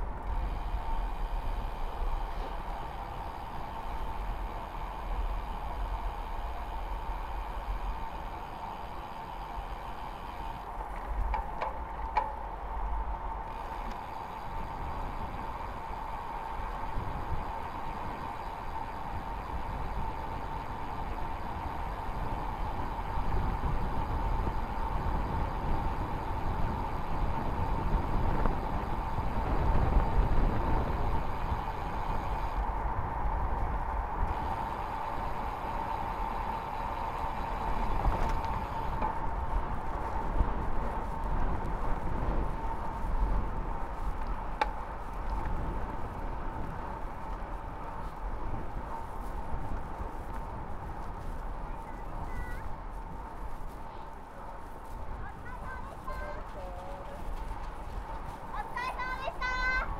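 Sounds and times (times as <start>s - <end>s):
bicycle tyre noise: 0.0s - 59.9s
steady mid-pitched whine: 0.0s - 59.9s
wind rushing over microphone: 0.0s - 59.9s.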